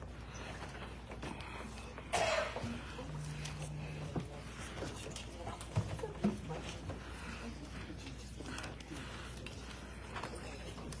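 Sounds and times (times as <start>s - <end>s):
steady low hum: 0.0s - 10.9s
person coughing: 2.1s - 2.8s.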